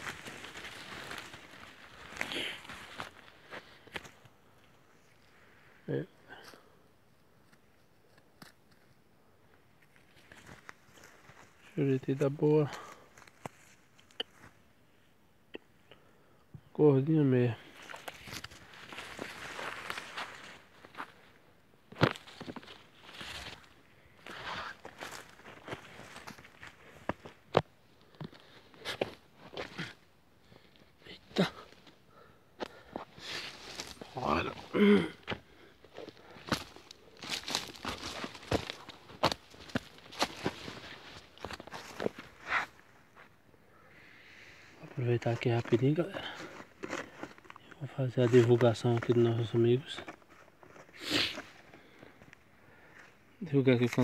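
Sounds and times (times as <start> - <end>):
footsteps through dry leaves: 0.0 - 3.3, 17.8 - 21.1, 36.4 - 42.8.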